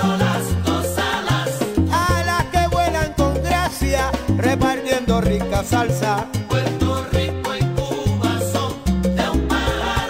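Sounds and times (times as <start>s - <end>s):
salsa band playing: 0.0s - 10.0s.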